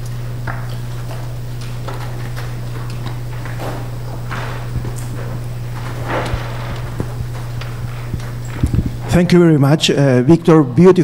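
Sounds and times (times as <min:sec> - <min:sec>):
low mains hum: 0:00.0 - 0:11.0
microphone handling knocks: 0:03.1 - 0:09.3.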